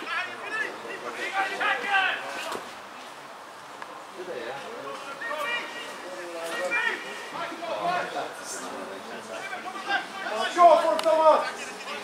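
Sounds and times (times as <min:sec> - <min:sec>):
voices shouting and calling: 0:00.0 - 0:12.0.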